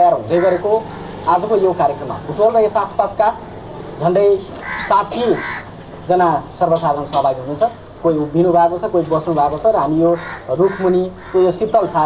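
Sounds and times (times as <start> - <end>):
man speaking: 0.0 - 3.4, 4.0 - 12.0.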